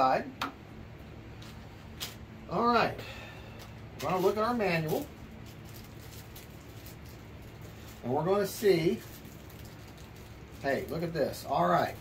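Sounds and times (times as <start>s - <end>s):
steady low hum: 0.0s - 12.0s
faint handling sounds: 3.5s - 12.0s.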